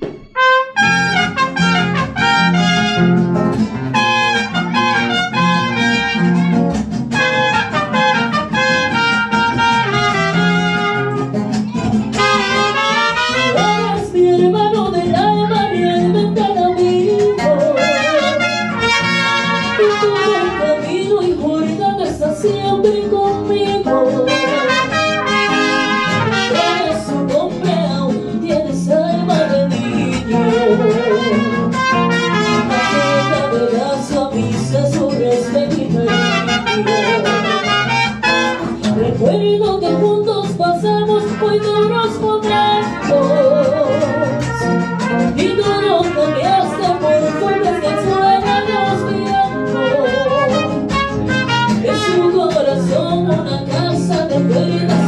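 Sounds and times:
mariachi band playing: 0:00.0 - 0:55.0
trumpets playing melody: 0:00.2 - 0:11.3, 0:12.1 - 0:14.1, 0:17.7 - 0:20.8, 0:24.2 - 0:27.1, 0:30.2 - 0:33.7, 0:36.0 - 0:38.8, 0:42.7 - 0:45.4, 0:46.0 - 0:52.3.

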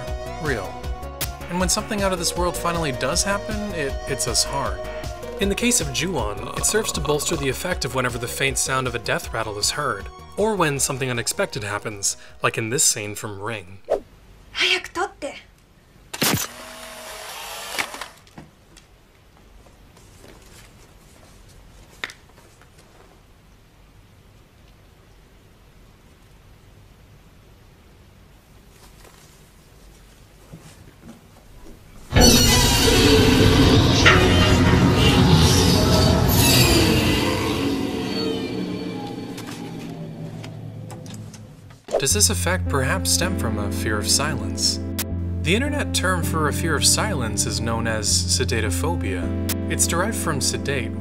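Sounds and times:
loud burst of scary music: 0:03.2 - 0:08.8, 0:32.1 - 0:41.1
camera motor whirring: 0:16.3 - 0:18.2.

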